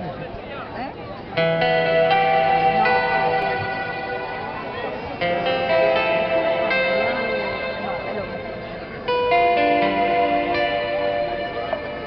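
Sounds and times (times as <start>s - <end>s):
voices talking: 0.0s - 12.0s
amplified guitar chord ringing: 1.4s - 12.0s.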